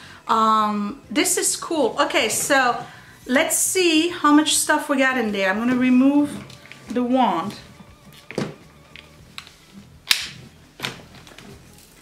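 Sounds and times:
plastic vacuum parts knocking: 8.2 - 9.5.

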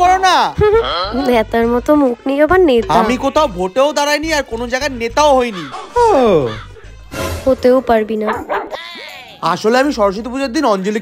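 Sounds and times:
background music with singing: 0.0 - 10.5
dog-like yelping: 8.3 - 8.8.

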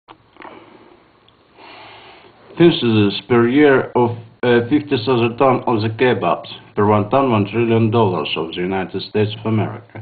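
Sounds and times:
man breathing close to microphone: 0.4 - 2.4
man sniffing: 1.6 - 2.4.

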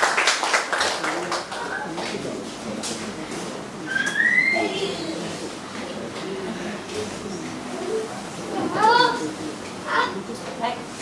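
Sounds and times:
faint voices in a hall: 0.0 - 11.0.

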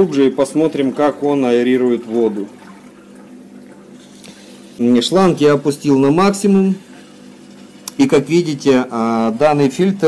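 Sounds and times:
aquarium filter running underwater: 0.0 - 10.0.

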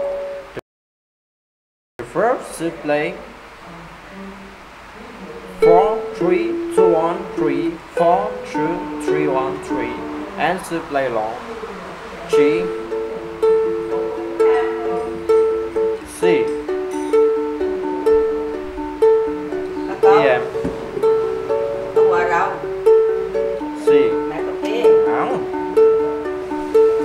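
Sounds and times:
ukulele fingerpicking: 5.4 - 27.0.

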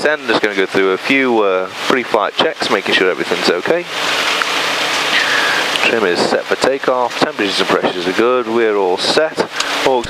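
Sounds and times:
light aircraft idling: 2.8 - 8.8, 9.4 - 10.0.

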